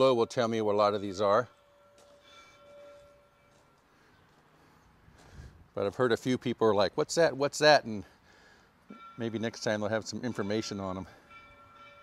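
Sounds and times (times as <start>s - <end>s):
bell ringing: 0.0s - 4.3s, 8.9s - 12.0s.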